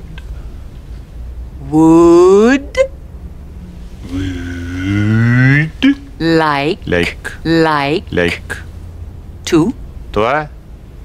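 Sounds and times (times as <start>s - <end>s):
woman's voice: 1.6s - 3.0s, 6.2s - 8.6s, 9.5s - 9.8s
man drawing out a low vowel: 4.0s - 6.2s.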